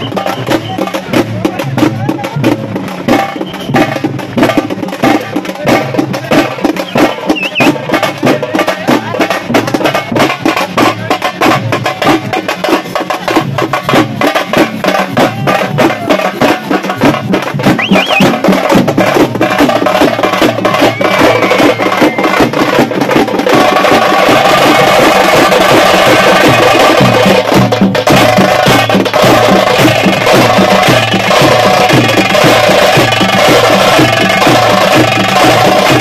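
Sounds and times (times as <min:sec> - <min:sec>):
frame drums beaten with sticks: 0:00.0 - 0:36.0.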